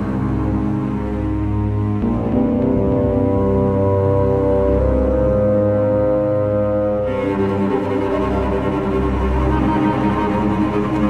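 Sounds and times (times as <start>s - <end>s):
low sustained music chord: 0.0s - 11.0s.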